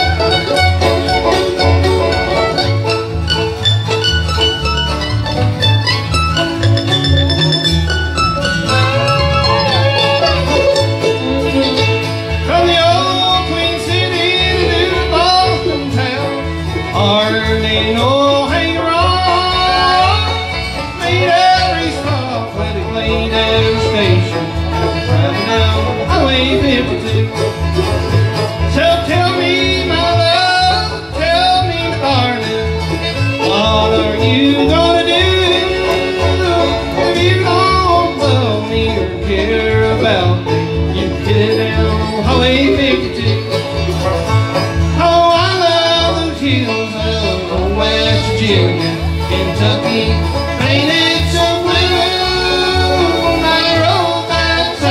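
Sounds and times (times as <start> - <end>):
bluegrass band playing: 0.0 - 54.9.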